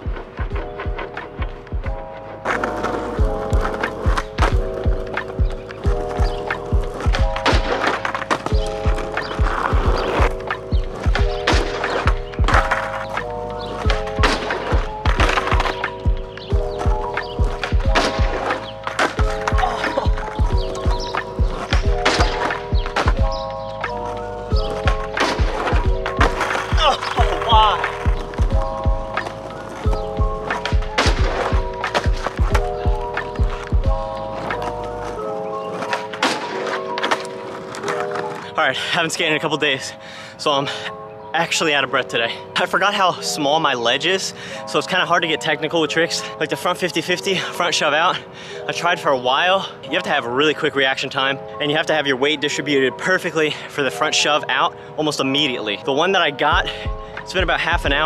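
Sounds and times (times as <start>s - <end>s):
background music with drum beat: 0.0s - 2.1s, 3.2s - 7.9s, 8.5s - 12.9s, 13.9s - 18.5s, 19.2s - 34.2s, 56.6s - 58.0s.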